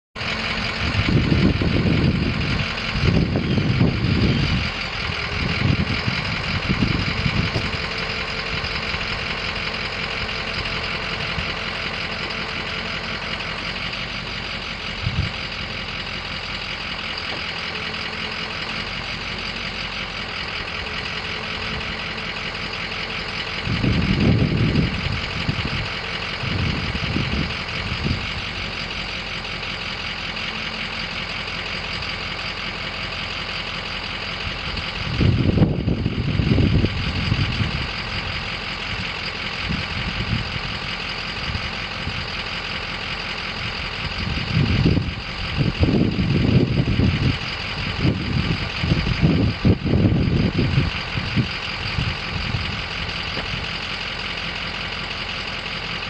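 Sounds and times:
diesel engine idling: 0.2s - 56.0s
low engine rumbles: 0.2s - 56.0s.

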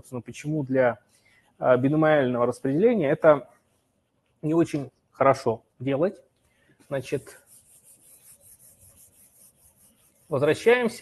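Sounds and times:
faint rubbing or scratching: 6.4s - 11.0s.

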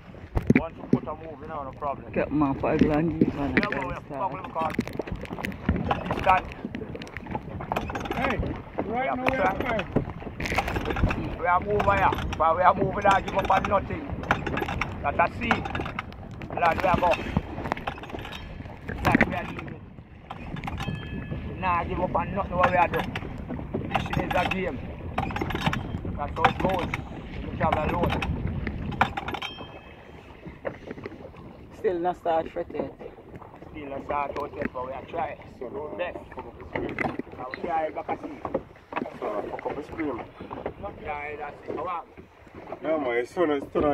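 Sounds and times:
paddle strokes splashing: 0.0s - 43.9s
water against boat hull: 0.0s - 43.9s
wind on microphone: 0.0s - 43.9s.

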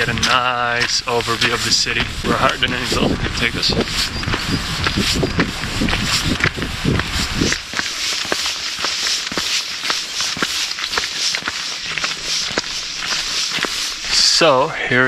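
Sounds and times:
footsteps on wet asphalt: 0.0s - 14.6s
steady hiss: 0.0s - 15.0s.

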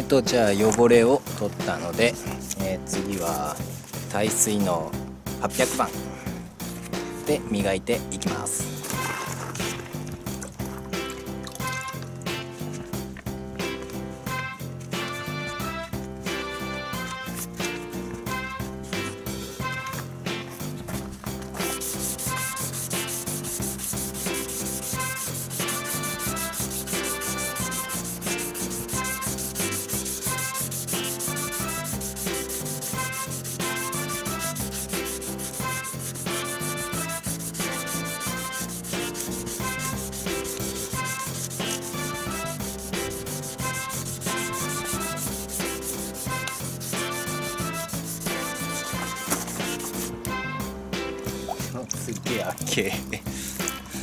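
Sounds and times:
sandpaper scratching: 1.6s - 4.6s, 16.9s - 50.2s
background music with a beat: 10.8s - 54.0s.

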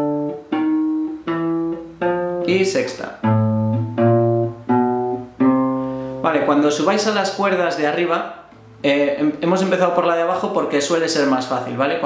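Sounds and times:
classical guitar plucked notes: 0.0s - 7.7s, 8.3s - 11.3s.

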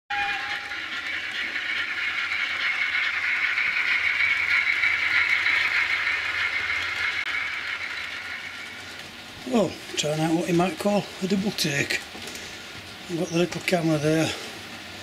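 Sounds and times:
model train whine: 0.1s - 15.0s
rail noise: 0.1s - 15.0s.

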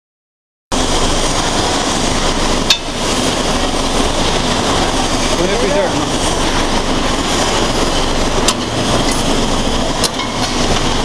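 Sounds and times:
shearing machine running: 0.8s - 11.0s.

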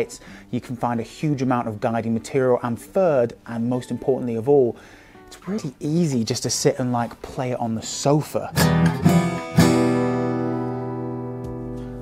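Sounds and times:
acoustic guitar chord strummed: 8.5s - 12.0s.

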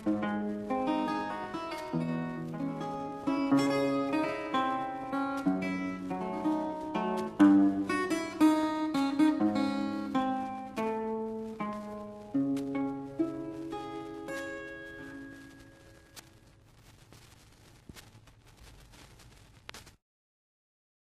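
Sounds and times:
acoustic guitar playing solo: 0.0s - 16.2s.

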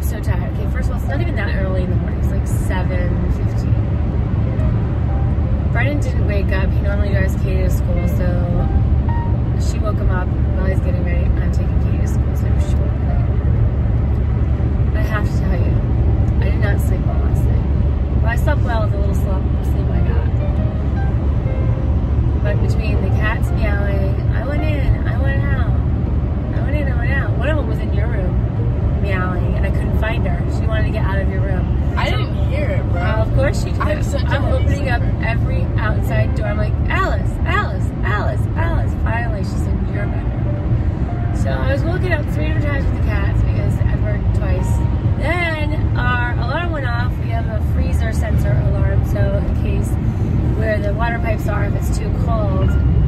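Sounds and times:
people talking: 0.0s - 3.8s, 5.8s - 8.6s, 9.6s - 13.1s, 15.0s - 15.8s, 16.4s - 20.4s, 22.4s - 25.8s, 26.5s - 28.4s, 29.0s - 40.4s, 41.4s - 50.0s, 50.6s - 52.8s
car cabin road rumble: 0.0s - 53.0s.

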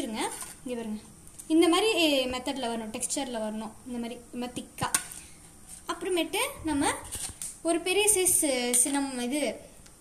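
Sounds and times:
woman speaking: 0.0s - 5.1s, 5.8s - 9.7s.

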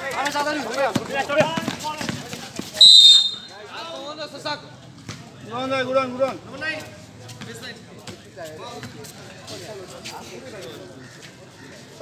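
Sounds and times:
basketball bouncing on concrete: 0.9s - 2.8s
referee's whistle blast: 2.8s - 3.6s.

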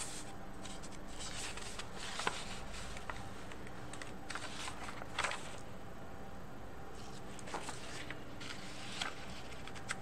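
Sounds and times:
paper rustling: 0.0s - 5.6s, 7.0s - 10.0s.

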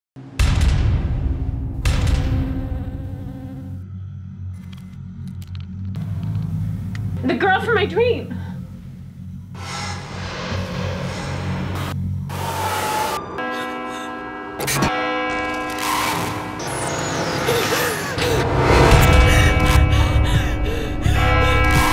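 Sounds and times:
deep cinematic impact hit: 0.2s - 3.8s
trailer music: 0.2s - 21.9s
low hum: 1.2s - 14.8s, 18.1s - 21.9s
rumbling sound effect: 8.6s - 13.2s.

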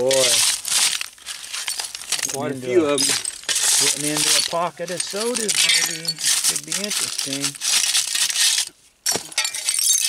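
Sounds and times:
glass shards clinking: 0.0s - 10.0s
shovel scraping soil and glass: 0.0s - 10.0s.

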